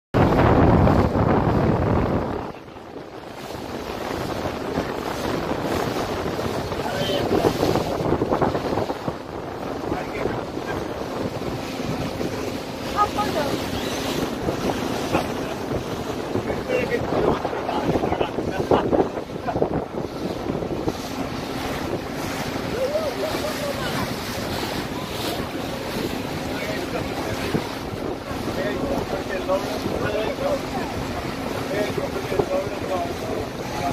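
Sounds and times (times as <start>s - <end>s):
wind buffeting microphone: 0.1s - 33.9s
rushing water: 0.2s - 33.9s
faint voices: 4.2s - 33.9s.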